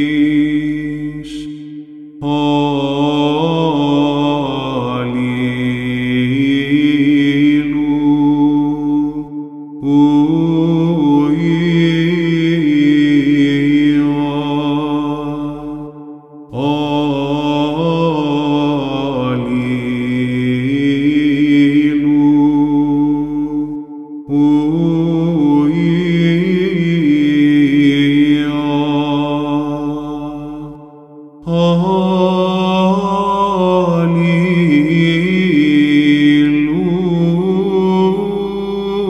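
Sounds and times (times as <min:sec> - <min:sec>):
man singing chant: 0:00.0 - 0:39.0.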